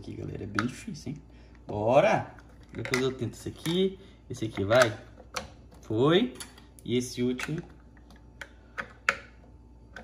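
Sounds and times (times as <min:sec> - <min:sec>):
plastic lids clicking and knocking: 0:00.4 - 0:01.0, 0:02.4 - 0:06.6.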